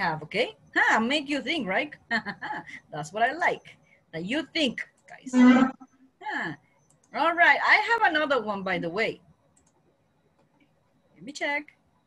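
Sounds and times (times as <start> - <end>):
person speaking: 5.2 - 5.8
faint short clicks: 9.6 - 10.6.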